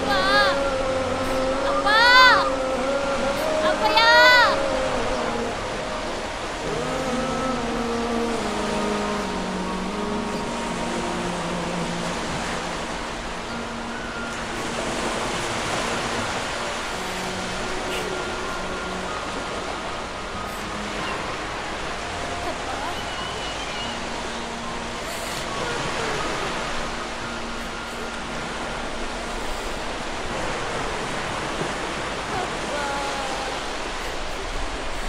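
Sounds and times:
ocean surf: 0.0s - 35.0s
soft music of long held notes: 0.0s - 35.0s.

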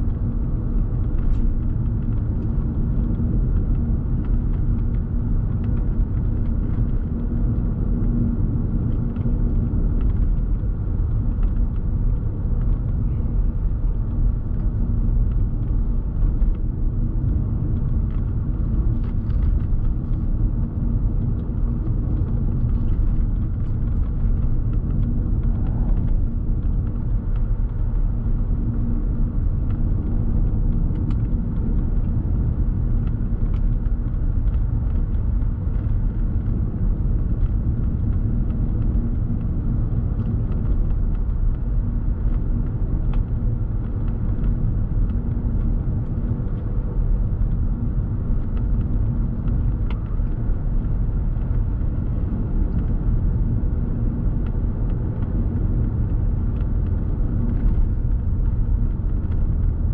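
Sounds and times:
car driving interior rumble: 0.0s - 59.9s
faint steady hum: 0.0s - 59.9s.

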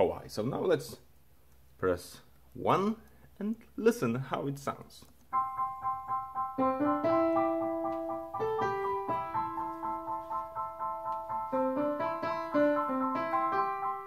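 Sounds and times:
digital piano melody over chords: 5.3s - 14.0s.

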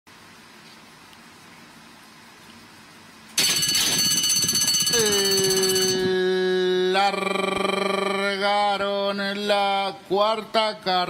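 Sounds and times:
starting-gate bell ringing: 3.4s - 6.4s
long held pitched tone: 3.4s - 8.2s.

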